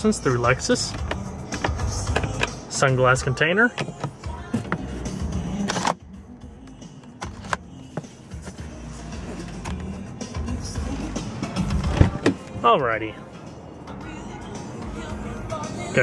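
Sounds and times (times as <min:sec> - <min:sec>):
soft music from car stereo: 0:00.0 - 0:16.0.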